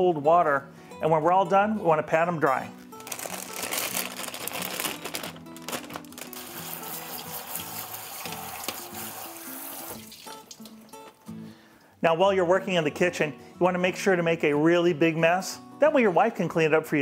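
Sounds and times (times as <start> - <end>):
background music: 0.0 - 17.0
water spraying from faucet: 6.4 - 10.8.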